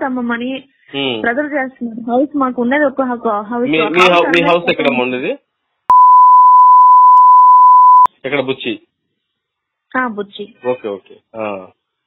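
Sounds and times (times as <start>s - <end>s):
censor bleep tone: 5.9s - 8.1s.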